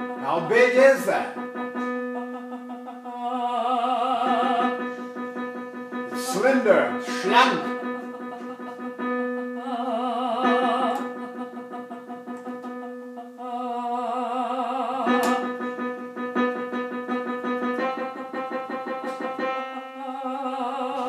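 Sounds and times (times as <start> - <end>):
soprano singing with vibrato: 0.0 - 16.3, 17.8 - 21.0
piano playing repeated chords: 0.0 - 21.0.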